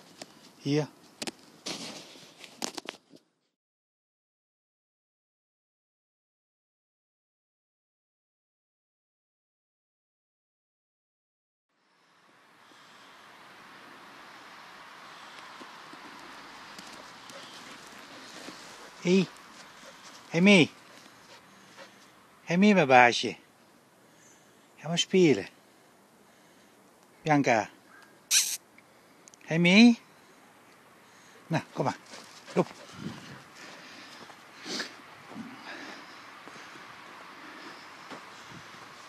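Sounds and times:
footsteps crunching through snow: 1.6s - 3.0s, 16.7s - 21.4s.

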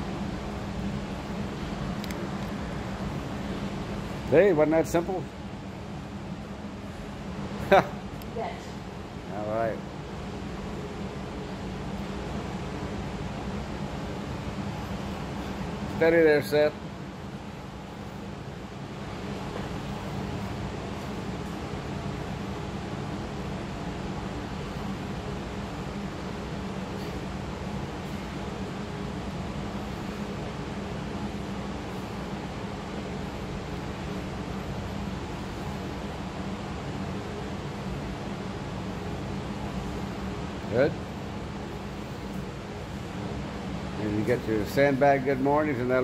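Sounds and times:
electric fan whirring: 0.0s - 46.0s.

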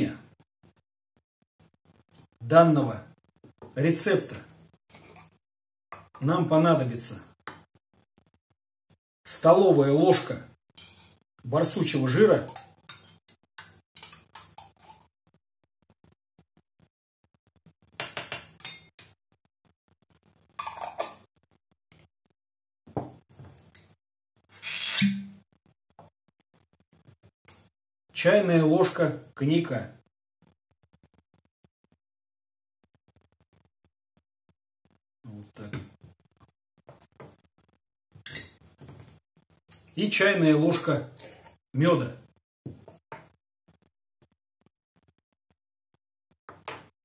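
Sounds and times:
metal spoon scraping a bowl: 10.8s - 11.2s, 12.4s - 15.1s, 38.2s - 38.6s
jars and bottle handled on table: 20.6s - 21.3s
glass bottle knocking on table: 23.0s - 23.2s.

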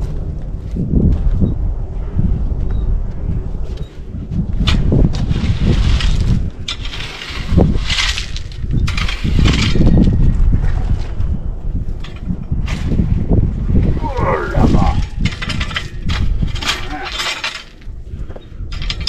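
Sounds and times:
low wind rumble on microphone: 0.0s - 19.0s
rake scraping through crushed rock: 4.7s - 10.0s, 14.8s - 17.9s.

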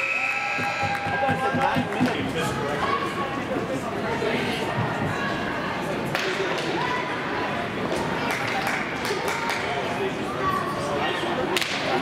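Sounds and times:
murmur of spectators' voices: 0.0s - 12.0s.

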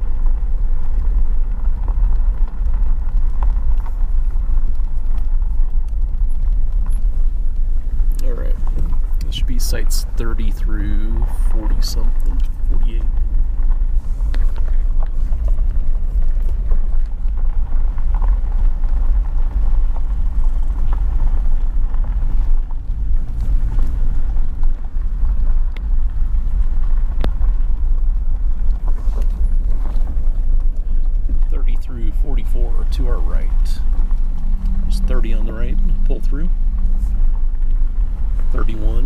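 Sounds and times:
vehicle rumbling on gravel: 0.0s - 39.0s.

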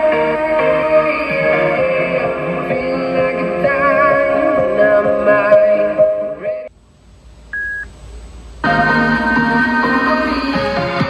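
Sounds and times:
short beep: 7.6s - 7.9s
music from small speaker: 8.6s - 11.0s.

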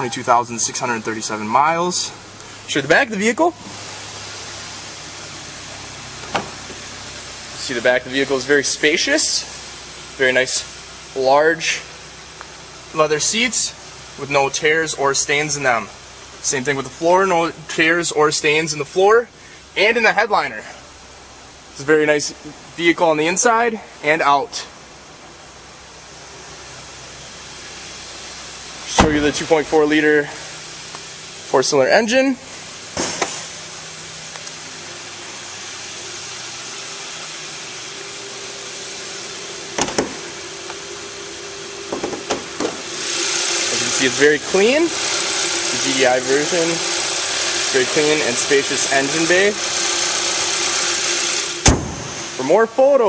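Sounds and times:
car engine idling: 0.0s - 17.7s, 24.7s - 52.6s
steady airy hiss: 0.0s - 53.0s
car hood slamming shut: 6.2s - 6.7s, 29.0s - 29.4s, 33.0s - 33.5s, 39.8s - 40.3s, 41.9s - 42.8s, 51.6s - 52.2s.

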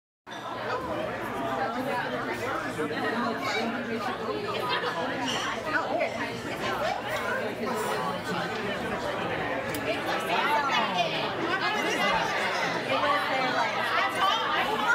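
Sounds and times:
restaurant chatter: 0.3s - 14.9s.

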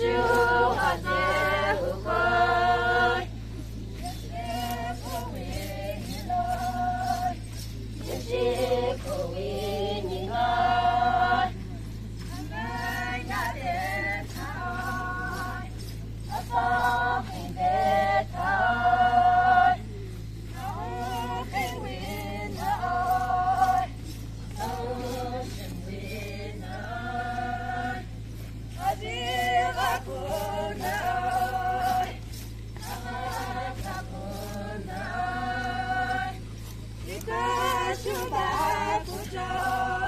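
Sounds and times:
group chanting in unison: 0.0s - 3.4s, 8.1s - 11.6s, 16.4s - 19.9s, 37.1s - 40.0s
steady low hum: 0.0s - 40.0s
women singing in unison: 0.0s - 40.0s.

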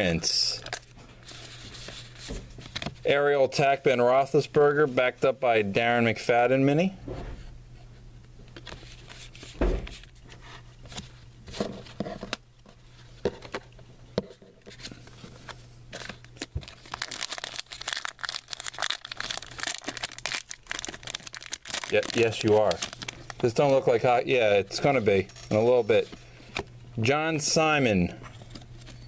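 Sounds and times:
low thump: 7.0s - 7.5s
foil pack tearing and crinkling: 16.0s - 23.5s.

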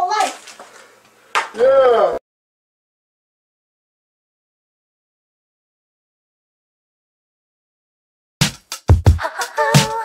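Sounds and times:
person exclaiming wordlessly: 1.6s - 2.2s.

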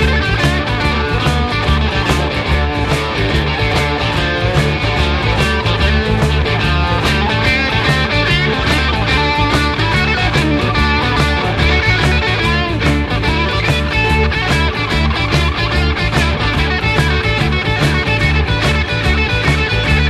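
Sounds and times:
instrumental rock music: 0.0s - 20.0s.

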